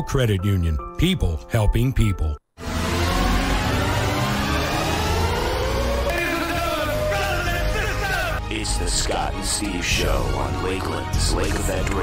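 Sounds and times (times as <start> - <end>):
rising rushing noise: 2.6 - 8.4.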